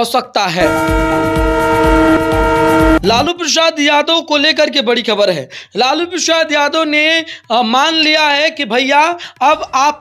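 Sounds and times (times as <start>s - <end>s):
horn-like sustained chord: 0.6s - 3.3s
pulsing low bass: 0.6s - 3.3s.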